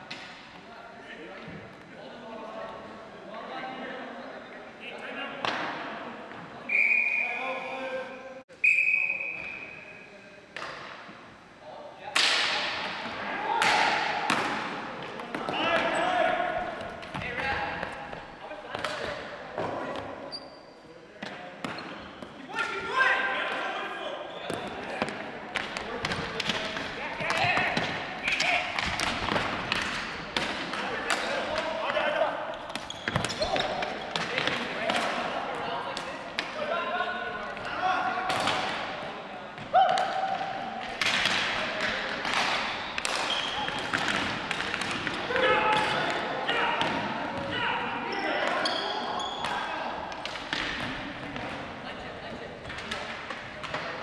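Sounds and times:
plastic hockey sticks clacking: 0:25.0 - 0:31.7, 0:40.8 - 0:46.0.

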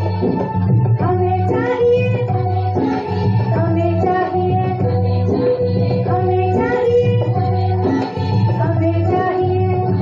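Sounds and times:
devotional singing: 0:01.2 - 0:10.0.

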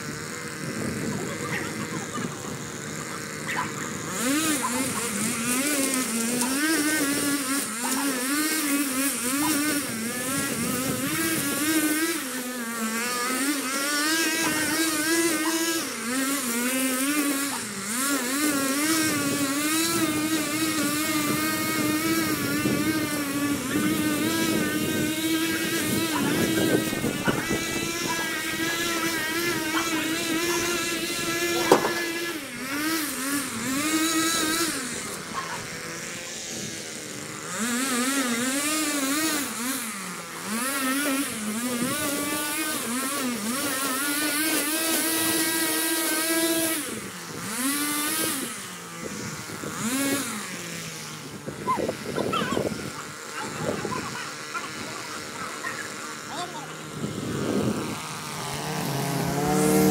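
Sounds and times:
string trimmer cutting weeds: 0:00.0 - 0:59.9.

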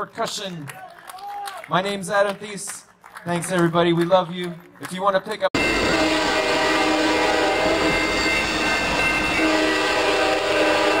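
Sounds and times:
low rumble of train: 0:05.6 - 0:11.0
train horn chord: 0:05.6 - 0:11.0.

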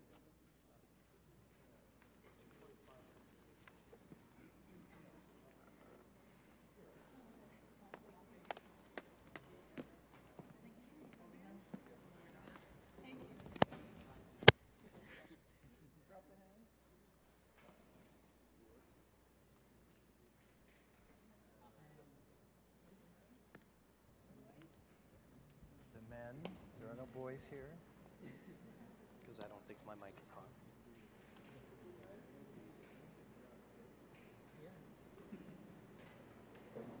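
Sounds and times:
man speaking faintly: 0:29.2 - 0:34.9.

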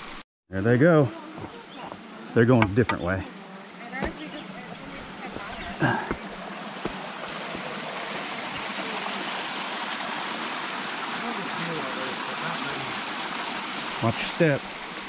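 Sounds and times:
water rushing over rocks: 0:00.9 - 0:15.0.

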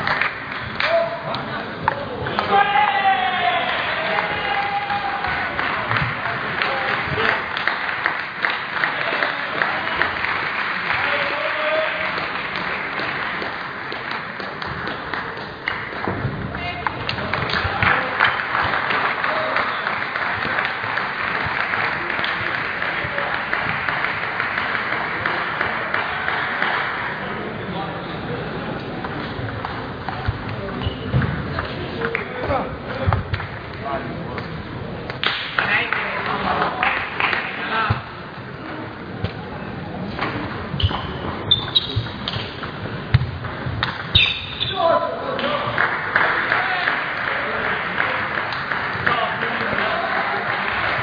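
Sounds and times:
people clapping: 0:00.0 - 0:27.6, 0:29.0 - 0:38.7, 0:43.1 - 0:51.0
many voices: 0:00.0 - 0:51.0.

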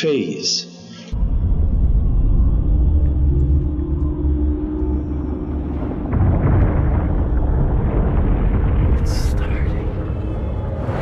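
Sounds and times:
steady low drone: 0:01.1 - 0:11.0
deep earth rumble: 0:01.2 - 0:11.0.

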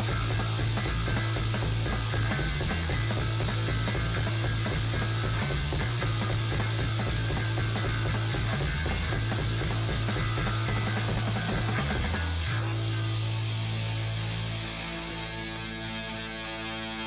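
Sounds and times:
noise rock band playing: 0:00.0 - 0:17.0.

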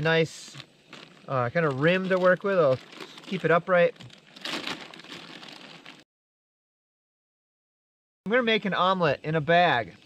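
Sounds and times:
plastic bag crinkling: 0:00.4 - 0:06.0.

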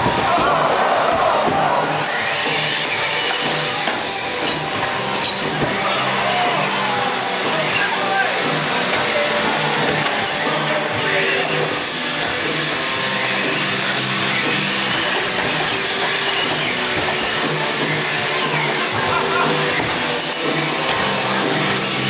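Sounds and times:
crowd chatter: 0:00.0 - 0:22.0
electric motors whining: 0:00.0 - 0:22.0.

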